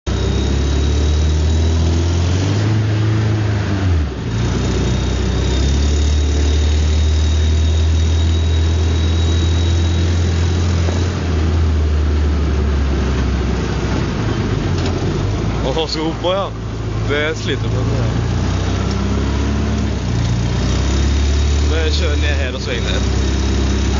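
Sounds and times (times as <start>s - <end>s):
car engine running while driving: 0.0s - 23.9s.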